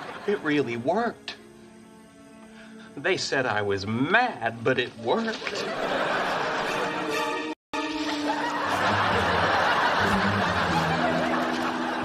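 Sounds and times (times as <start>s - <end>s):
studio audience laughing: 0.0s - 0.5s, 5.2s - 12.0s.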